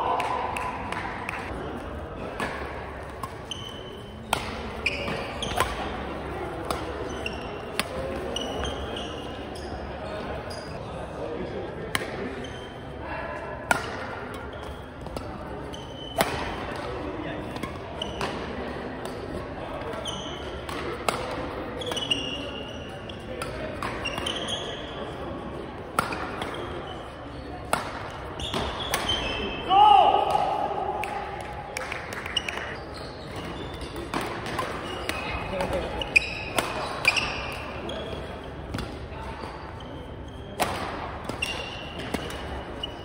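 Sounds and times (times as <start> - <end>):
murmur of voices: 0.0 - 43.0
racket hitting shuttlecock: 2.2 - 8.8, 13.7 - 15.4, 16.0 - 19.2, 20.5 - 22.4, 23.4 - 24.6, 25.9 - 26.8, 27.6 - 29.4, 33.4 - 37.8, 40.6 - 42.6
shoes squeaking on court floor: 3.1 - 11.0, 12.3 - 13.0, 14.3 - 29.7, 32.0 - 43.0.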